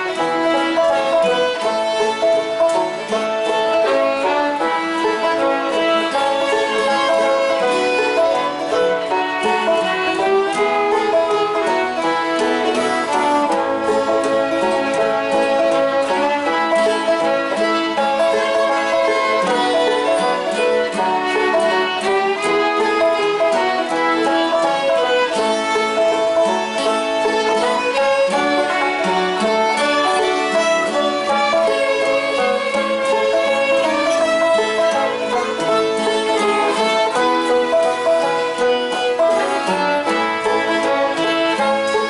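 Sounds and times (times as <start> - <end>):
banjo: 0.0 - 42.0
fiddles: 0.0 - 42.0
guitar: 0.0 - 42.0.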